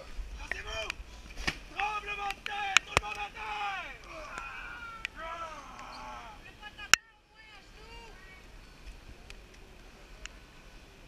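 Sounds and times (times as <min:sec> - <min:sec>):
people yelling and crying out: 0:01.7 - 0:08.4.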